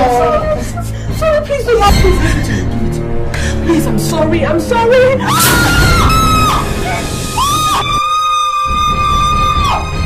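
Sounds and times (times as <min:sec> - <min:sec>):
dramatic background music: 0:00.0 - 0:10.0
woman screaming: 0:05.2 - 0:10.0.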